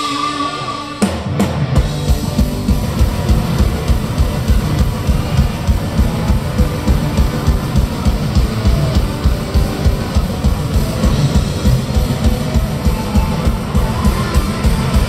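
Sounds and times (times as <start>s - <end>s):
heavy metal band playing live: 0.0s - 15.0s
fast bass drum pulse: 1.6s - 15.0s.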